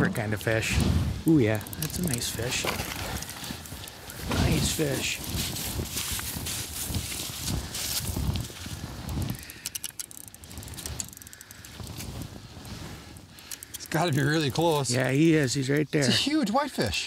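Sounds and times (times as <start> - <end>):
rustling and crunching in snow: 0.5 - 9.6, 10.3 - 15.6
quick sharp ticks: 9.1 - 12.2.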